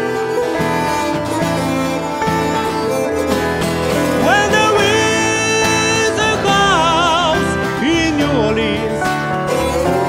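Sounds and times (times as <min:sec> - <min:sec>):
acoustic guitar: 0:00.0 - 0:10.0
keyboard piano: 0:00.0 - 0:10.0.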